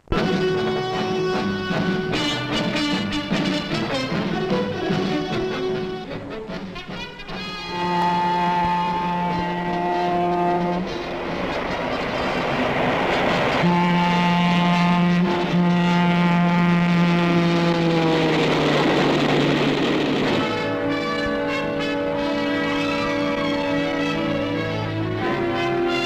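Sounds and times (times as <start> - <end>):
locomotive air horn: 0.0 - 19.2, 20.2 - 26.0
passing train rushing: 0.0 - 26.0.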